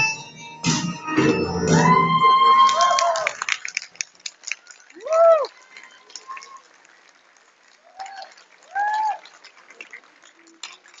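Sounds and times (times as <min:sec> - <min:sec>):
high cheering shouts: 0:01.7 - 0:03.5, 0:05.0 - 0:06.6, 0:07.9 - 0:09.3
audience clapping lightly: 0:01.7 - 0:11.0.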